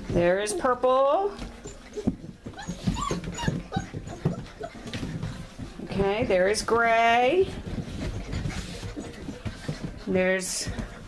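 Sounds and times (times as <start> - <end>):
puppy paws scuffling on floor: 0.0 - 11.0.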